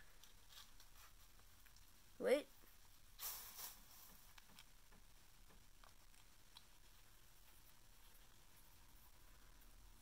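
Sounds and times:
soft rush of noise: 0:00.0 - 0:10.0
plastic tube handling ticks: 0:04.1 - 0:06.8.

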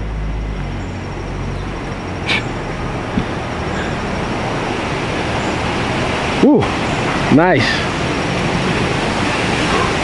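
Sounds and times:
steady rushing noise: 0:00.0 - 0:10.0.

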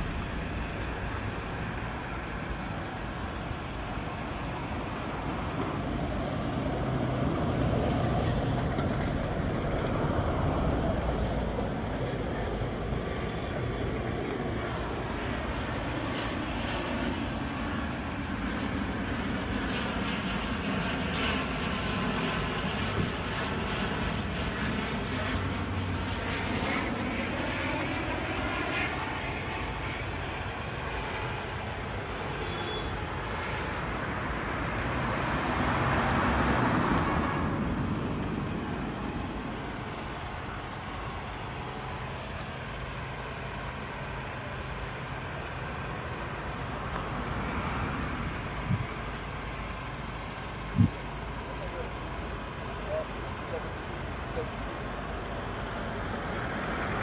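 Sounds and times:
engine drone with humming pitch: 0:00.0 - 0:57.0.

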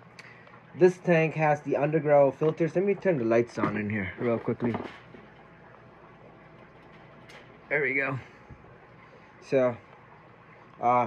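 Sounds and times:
aquarium filtration hum and hiss: 0:00.0 - 0:11.0.

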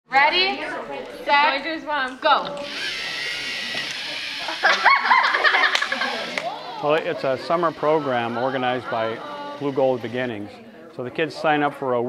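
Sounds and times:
children shouting and squealing: 0:02.5 - 0:10.6.

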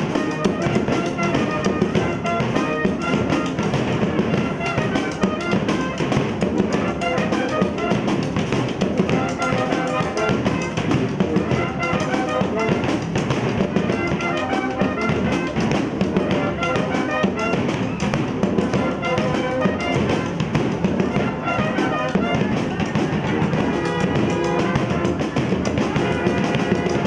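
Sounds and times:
bass drums: 0:00.0 - 0:27.0
brass band playing: 0:00.0 - 0:27.0
snare drum: 0:00.0 - 0:27.0.

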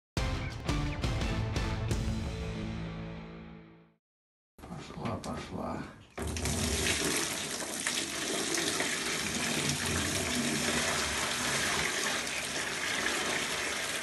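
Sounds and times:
water pouring into plastic basin: 0:06.2 - 0:14.0.

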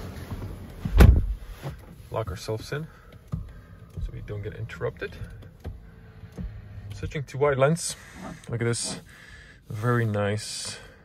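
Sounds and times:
car door thud: 0:00.8 - 0:01.5.

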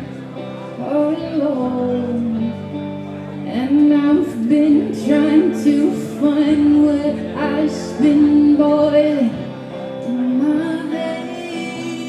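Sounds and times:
electric guitar: 0:00.0 - 0:12.0
woman singing: 0:00.7 - 0:12.0.

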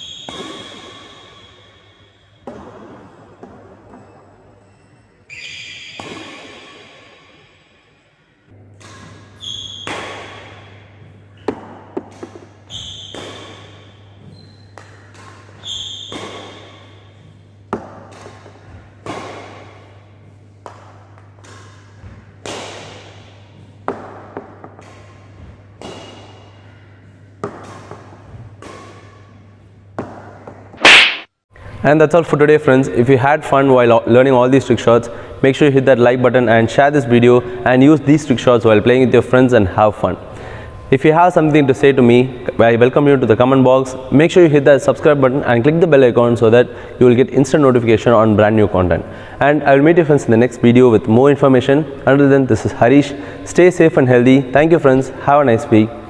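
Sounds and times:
racket hitting shuttlecock: 0:00.0 - 0:04.2, 0:06.0 - 0:07.4, 0:08.6 - 0:31.3
steady low hum: 0:06.0 - 0:33.7.

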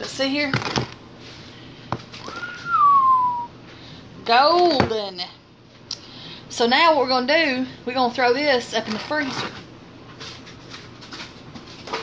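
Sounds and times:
woman whistling: 0:02.2 - 0:03.5.

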